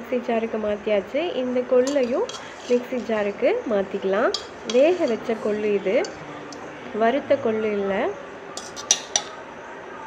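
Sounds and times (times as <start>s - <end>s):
spoon clinking against metal pot: 1.8s - 3.3s, 4.2s - 6.7s, 8.6s - 9.4s.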